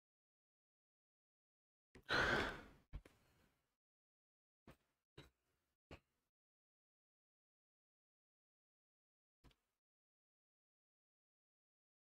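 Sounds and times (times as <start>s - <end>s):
person sighing: 2.1s - 2.7s.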